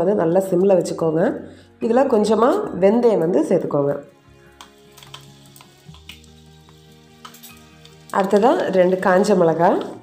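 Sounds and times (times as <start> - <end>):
soft background music: 0.0 - 10.0
seeds sizzling in hot oil: 4.1 - 10.0.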